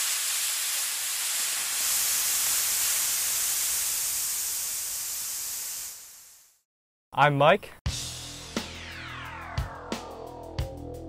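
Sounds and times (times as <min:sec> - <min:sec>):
steady hissing: 0:00.0 - 0:06.7.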